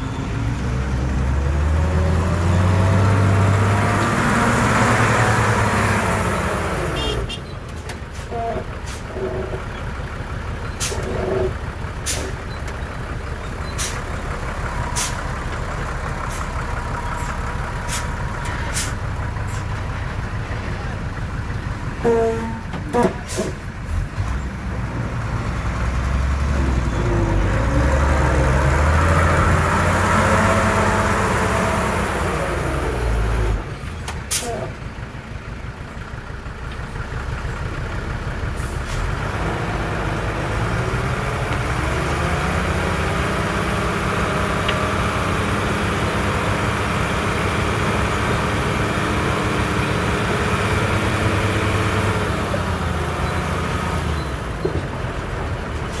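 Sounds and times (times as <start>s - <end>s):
diesel truck engine revving: 0.0s - 7.3s, 8.1s - 56.0s.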